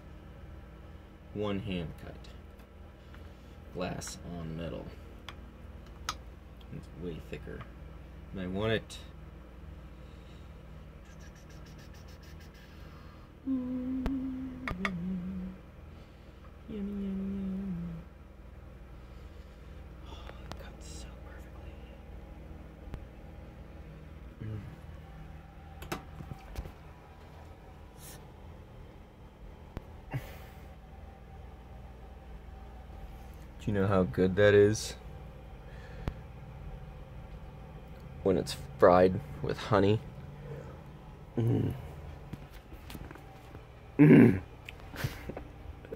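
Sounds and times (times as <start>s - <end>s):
low room hum: 0.0s - 45.9s
person murmuring: 24.4s - 24.8s, 41.3s - 42.0s, 44.0s - 44.5s.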